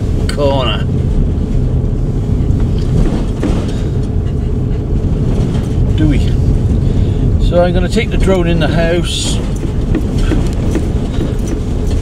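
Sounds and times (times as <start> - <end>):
van engine and road noise: 0.0 - 12.0.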